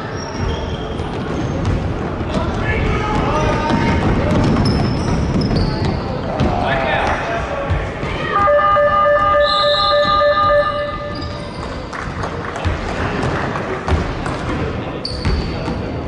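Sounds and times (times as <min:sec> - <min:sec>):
voices in gym: 0:00.0 - 0:16.0
sneakers squeaking on hardwood: 0:00.1 - 0:02.0, 0:03.4 - 0:06.6, 0:08.0 - 0:11.9, 0:15.0 - 0:15.8
long steady pitched tone: 0:08.4 - 0:11.4
basketball bouncing: 0:15.2 - 0:15.8.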